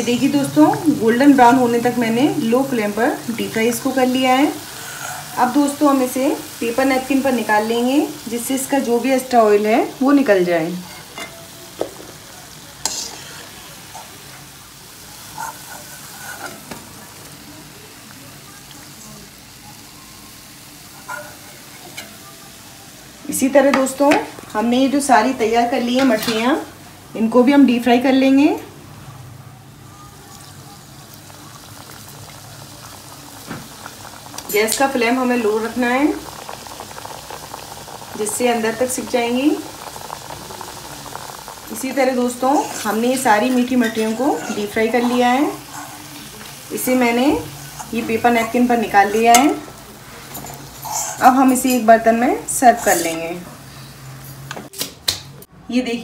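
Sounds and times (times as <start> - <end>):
oil sizzling and bubbling: 0.0 - 55.5.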